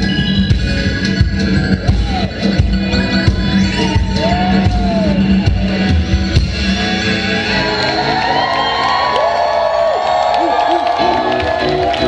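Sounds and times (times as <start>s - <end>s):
live rock band playing: 0.0s - 9.0s
crowd cheering and whooping: 1.8s - 12.0s.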